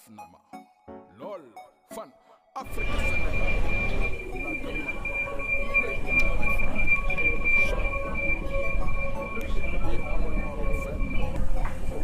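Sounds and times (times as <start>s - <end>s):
shuttle train running: 2.7s - 12.0s.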